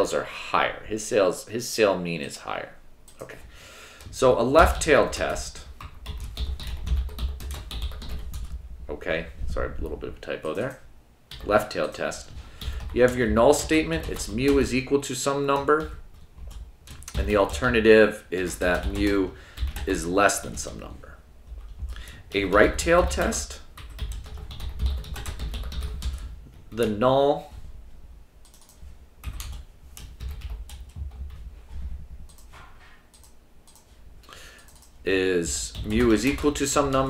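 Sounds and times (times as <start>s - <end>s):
low steady hum: 0.0s - 37.0s
keyboard typing: 4.0s - 8.6s, 10.6s - 14.8s, 15.5s - 20.8s, 21.5s - 26.9s, 28.4s - 31.4s, 32.3s - 33.9s, 34.6s - 37.0s.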